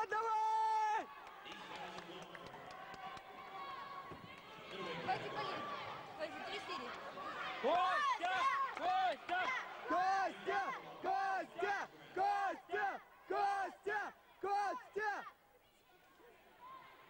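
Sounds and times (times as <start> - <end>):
spectators shouting rhythmic cheer: 0.0 - 17.0.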